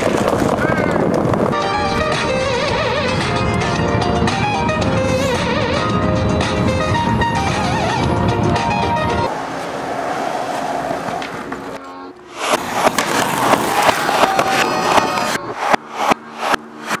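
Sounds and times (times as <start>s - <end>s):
skateboard clacking and slapping: 0.0s - 1.5s, 10.9s - 11.9s, 12.5s - 17.0s
skateboard wheels rolling on concrete: 0.0s - 16.5s
steady noise: 12.1s - 17.0s.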